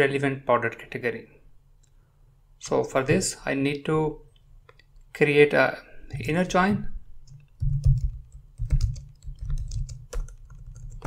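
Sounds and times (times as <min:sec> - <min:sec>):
computer keyboard typing: 0:07.2 - 0:11.0.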